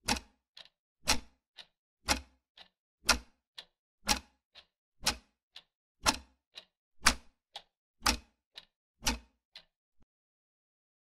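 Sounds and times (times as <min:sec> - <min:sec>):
clock ticking: 0:00.0 - 0:09.7.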